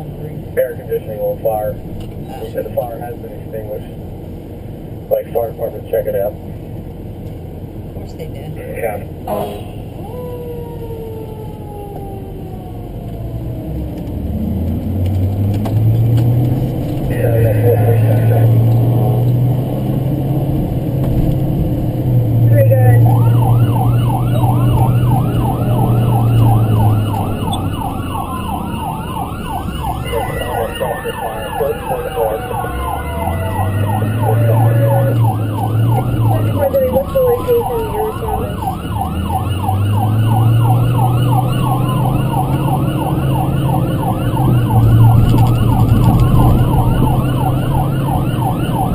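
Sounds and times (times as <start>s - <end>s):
siren wailing and yelping: 9.3s - 15.0s, 17.0s - 19.4s, 22.5s - 48.9s.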